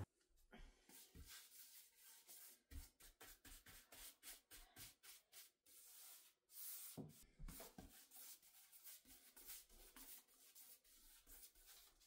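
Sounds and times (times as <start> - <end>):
paintbrush strokes on wood: 0.9 - 12.0.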